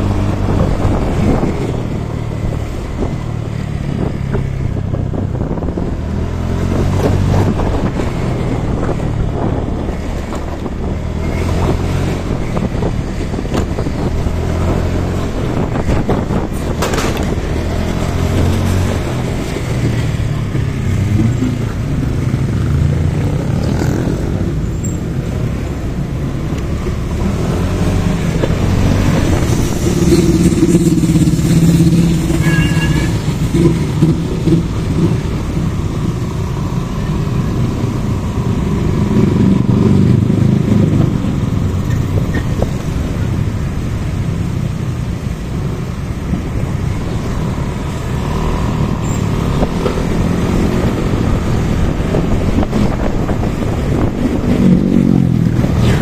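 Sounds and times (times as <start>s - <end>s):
surrounding traffic: 0.0s - 56.0s
wind and road noise: 0.0s - 56.0s.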